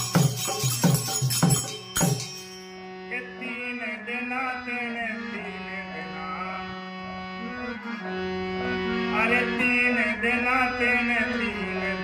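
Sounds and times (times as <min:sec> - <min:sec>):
harmonium melody over drone: 0:00.0 - 0:12.0.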